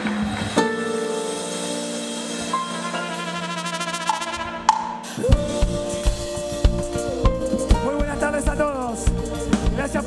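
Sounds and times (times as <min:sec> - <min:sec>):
bass guitar: 0:00.0 - 0:10.0
drum kit beat: 0:02.5 - 0:10.0.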